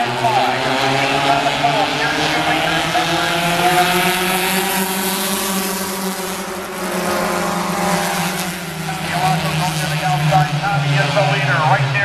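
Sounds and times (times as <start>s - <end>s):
race cars engines droning: 0.0s - 12.0s.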